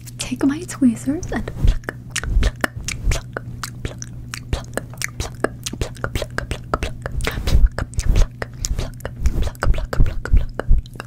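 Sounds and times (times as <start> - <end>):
low steady hum: 0.0 - 11.0
mouth clicks and pops: 1.6 - 11.0.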